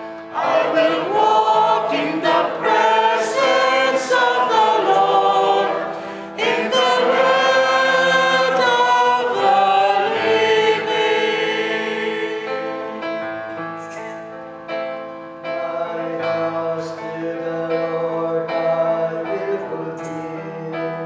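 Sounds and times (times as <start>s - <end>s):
held keyboard chords: 0.0s - 21.0s
choir singing: 0.2s - 13.2s.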